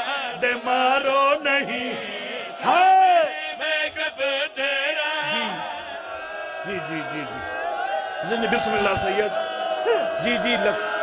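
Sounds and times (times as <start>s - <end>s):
man chanting: 0.0s - 5.8s.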